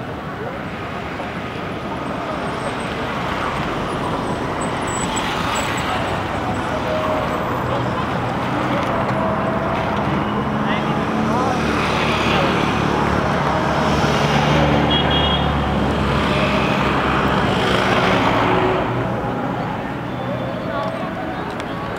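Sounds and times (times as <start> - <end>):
outdoor noise: 0.0 - 21.9.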